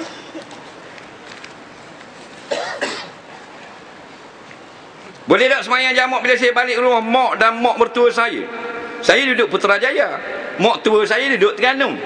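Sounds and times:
man coughing: 0:02.5 - 0:03.2.

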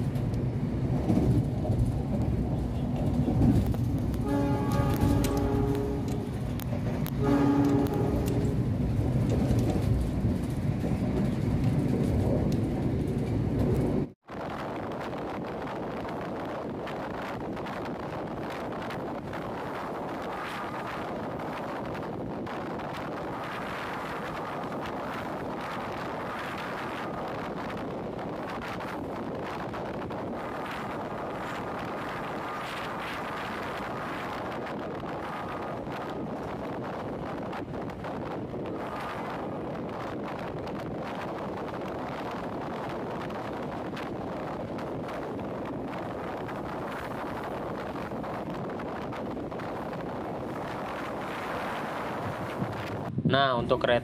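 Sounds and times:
passing train rumble: 0:00.0 - 0:54.0
train rushing at speed: 0:00.0 - 0:54.0.

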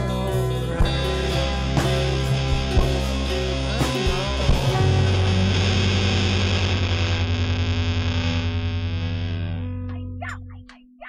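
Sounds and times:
distorted electric guitar chord: 0:00.0 - 0:10.2.

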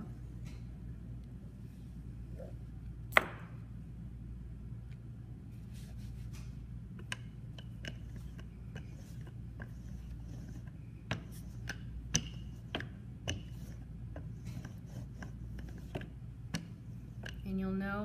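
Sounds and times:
steady low hum: 0:00.0 - 0:18.0
rolling pin clicking and knocking: 0:07.0 - 0:17.4.

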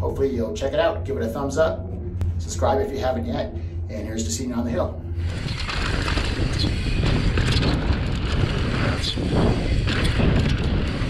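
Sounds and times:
bike clicks and rattles: 0:05.2 - 0:11.0
bike rolling over dirt trail: 0:05.2 - 0:11.0
wind buffeting microphone: 0:05.2 - 0:11.0.

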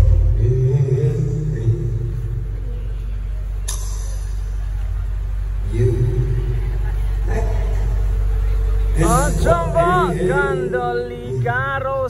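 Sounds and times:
indistinct voices: 0:00.0 - 0:12.0
steady low hum: 0:00.0 - 0:12.0.

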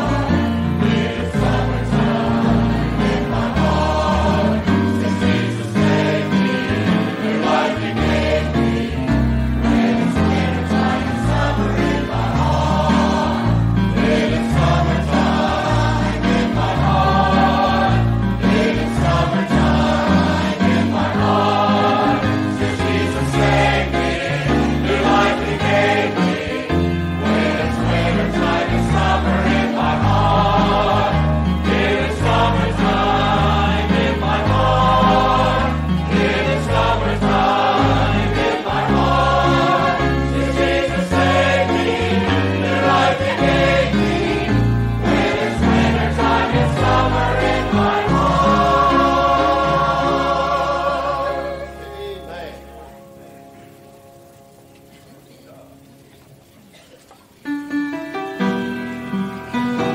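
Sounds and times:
choir singing a gospel hymn: 0:00.0 - 0:52.9.

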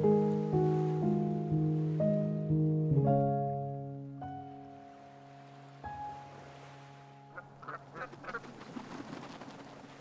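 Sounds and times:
ducks quacking: 0:07.3 - 0:08.5.

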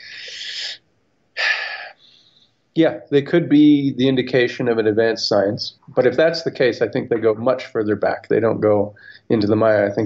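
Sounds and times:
man breathing in: 0:00.0 - 0:00.8, 0:01.4 - 0:02.6.

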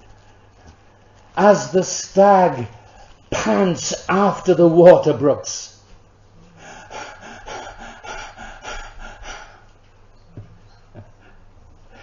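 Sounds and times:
man panting: 0:06.6 - 0:09.7.

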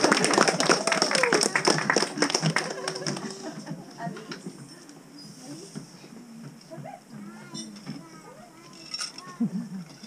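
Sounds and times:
chatter of children and adults: 0:01.4 - 0:10.0.

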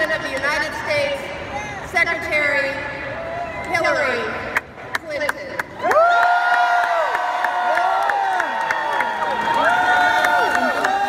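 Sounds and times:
crowd cheering: 0:05.8 - 0:11.0
whoops and shouts: 0:05.8 - 0:11.0.

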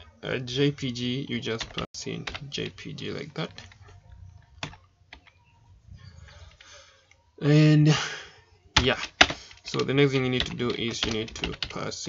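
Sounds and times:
keyboard keystrokes: 0:08.8 - 0:11.8.

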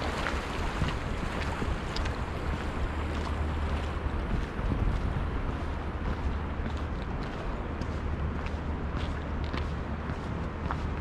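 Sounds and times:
fast-flowing river water: 0:00.0 - 0:09.0
wind buffeting microphone: 0:00.0 - 0:11.0.

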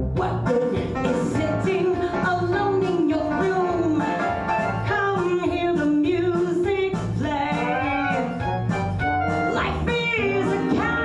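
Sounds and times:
instrumental backing with bass: 0:00.0 - 0:11.0
woman singing: 0:00.1 - 0:08.5, 0:09.5 - 0:11.0.

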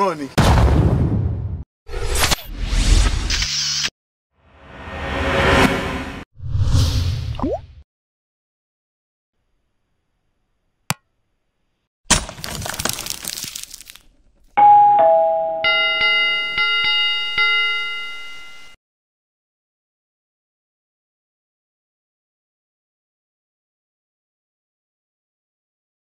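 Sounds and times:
notification bell chiming: 0:14.6 - 0:18.8.

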